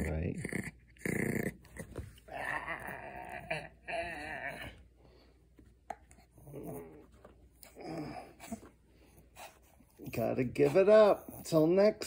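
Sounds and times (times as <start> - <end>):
dog growling: 0.0 - 4.8, 6.2 - 8.7.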